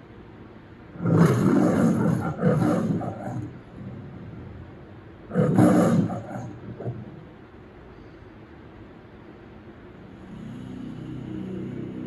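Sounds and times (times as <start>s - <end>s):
lion roar through tv speakers: 0.9s - 7.3s, 10.1s - 12.0s.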